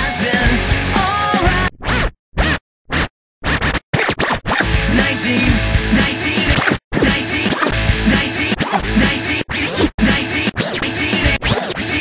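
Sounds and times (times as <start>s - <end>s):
record scratching: 1.7s - 12.0s.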